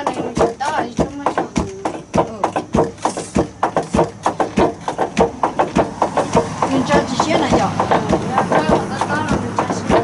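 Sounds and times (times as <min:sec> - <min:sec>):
wooden pestle thudding in mortar: 0:00.0 - 0:10.0.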